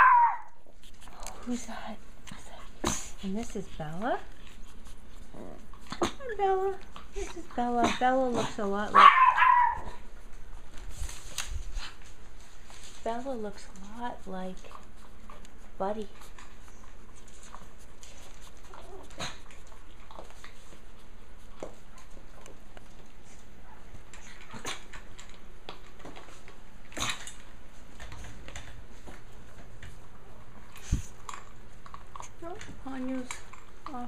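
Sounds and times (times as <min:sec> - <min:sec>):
puppy whimpering: 0:00.0 - 0:00.6, 0:05.2 - 0:10.1.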